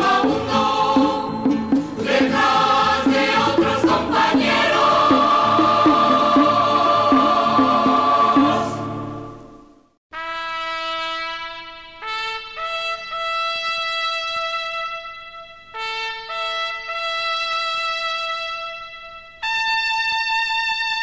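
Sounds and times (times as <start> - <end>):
choir singing chord: 0.0 - 9.8
solo trumpet long notes: 10.2 - 21.0.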